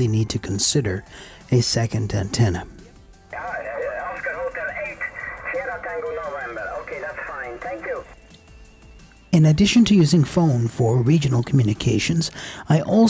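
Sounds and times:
thin voice over radio: 3.4 - 8.1.

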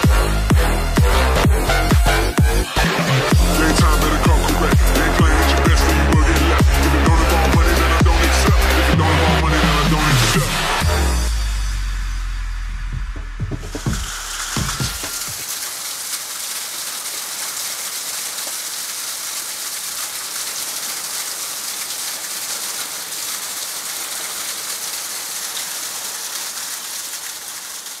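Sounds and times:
music track: 0.0 - 15.4
heavy rain hissing: 0.0 - 28.0.

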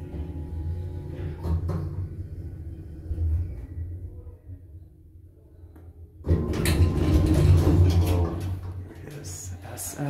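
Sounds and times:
door motor low hum: 0.0 - 4.6
elevator door sliding open: 6.3 - 8.6.

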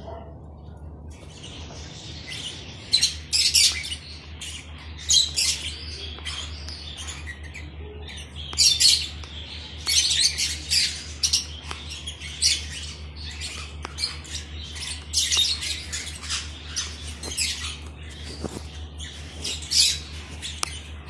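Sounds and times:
steady low hum: 0.0 - 21.0
lovebirds squawking: 1.2 - 21.0.

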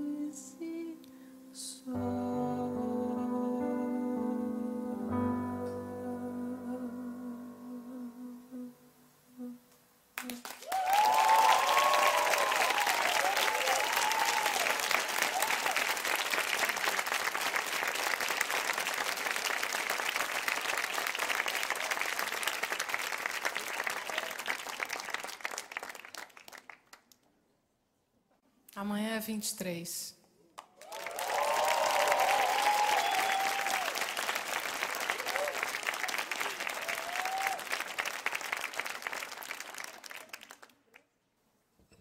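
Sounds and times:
audience applauding: 10.2 - 27.2, 30.6 - 41.0
audience cheering: 10.6 - 26.0, 30.8 - 40.6.

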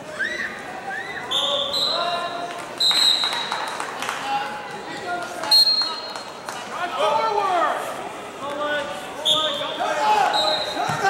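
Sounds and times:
crowd chatter in a gym: 0.0 - 11.0
referee's whistle blowing: 0.9 - 2.2, 2.8 - 3.5, 5.4 - 6.1, 9.2 - 11.0.

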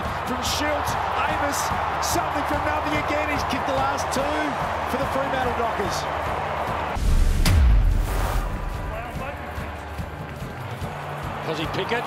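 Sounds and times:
deep bass boom: 7.0 - 8.9
sharp hit: 7.0 - 8.9.

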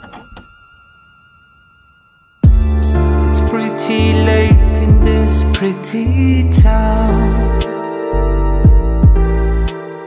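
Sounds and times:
held high instrumental tones: 0.0 - 10.0.

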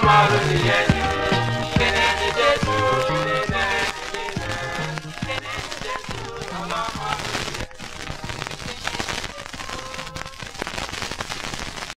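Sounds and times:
gospel song from vinyl: 0.0 - 12.0
vinyl crackle and clicks: 0.0 - 12.0.

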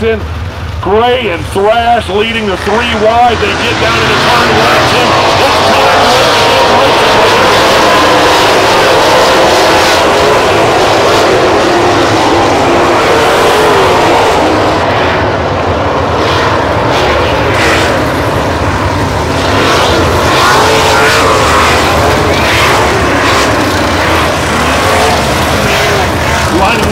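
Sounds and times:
racing car engines: 0.0 - 26.9.

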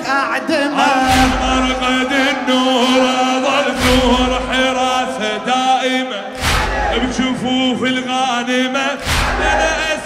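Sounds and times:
man and crowd chanting: 0.0 - 10.0.

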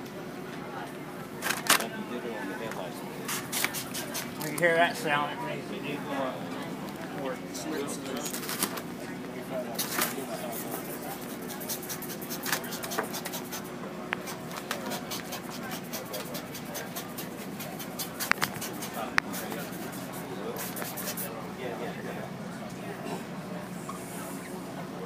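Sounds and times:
crowd talking: 0.0 - 25.0
plastic film crackling and clicking: 8.2 - 8.8.

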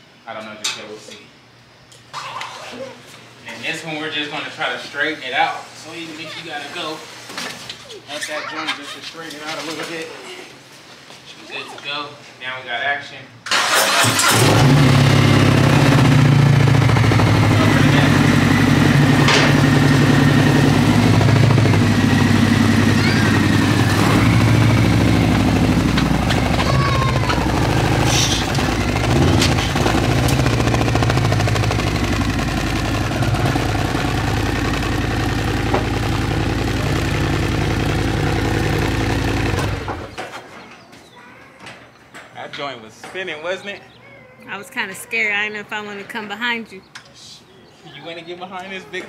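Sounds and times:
motorcycle engine revving: 13.6 - 40.3.

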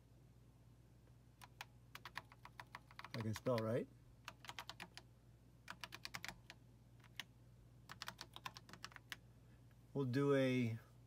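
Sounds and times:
faint computer keyboard typing: 1.4 - 9.2.

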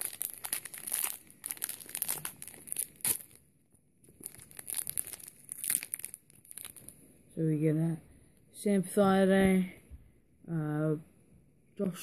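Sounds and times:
foil packet crinkling and tearing: 0.0 - 3.4, 4.1 - 7.0.

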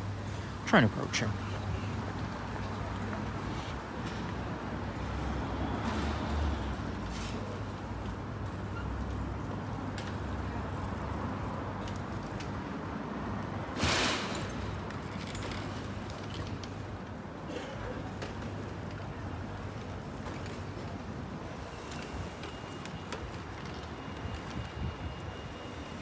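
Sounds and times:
street traffic rumble: 0.0 - 26.0
short loud hiss: 13.8 - 14.4.

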